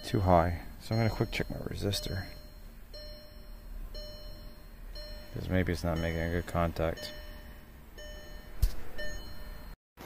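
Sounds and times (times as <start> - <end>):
faint electronic chime: 0.0 - 9.8.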